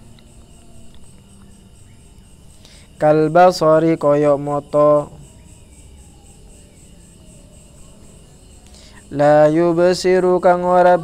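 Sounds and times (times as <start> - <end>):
crickets chirping: 0.0 - 11.0
low background hum: 0.0 - 11.0.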